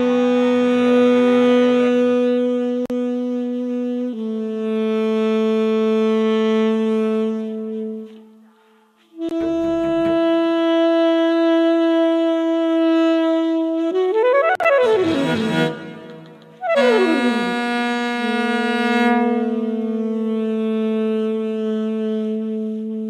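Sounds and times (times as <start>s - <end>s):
saxophone: 0.0s - 23.0s
cello: 9.2s - 11.2s.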